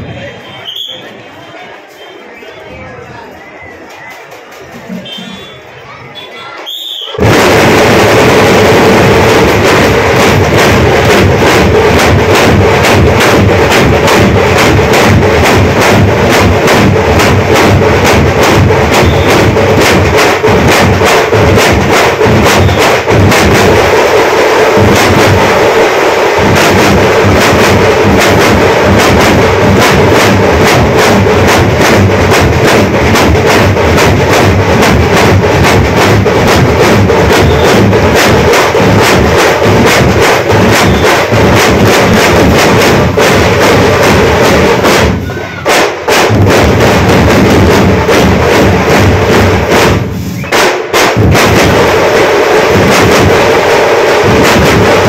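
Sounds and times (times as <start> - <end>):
large drums beating: 7.1 - 55.0.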